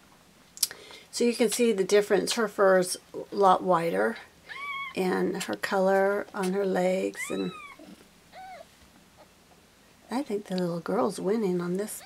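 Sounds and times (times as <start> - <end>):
cat mewing: 4.5 - 5.0, 7.2 - 8.7.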